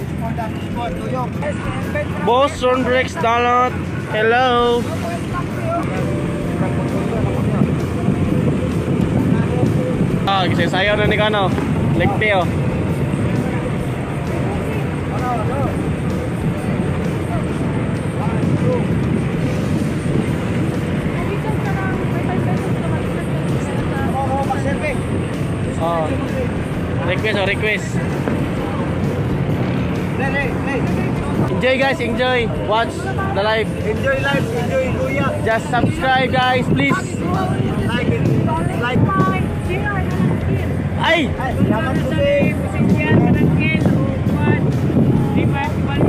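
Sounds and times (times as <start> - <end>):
boat engines running: 0.0 - 46.0
faint voices: 0.0 - 46.0
wind on microphone: 3.8 - 46.0.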